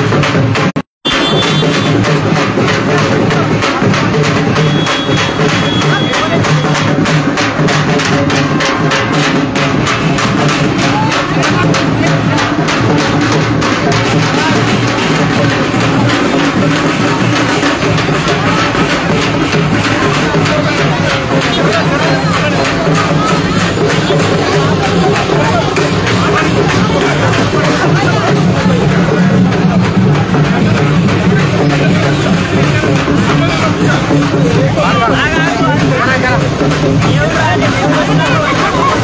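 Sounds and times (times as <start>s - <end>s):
crowd voices: 0.0s - 39.0s
procession music with drums: 0.0s - 39.0s.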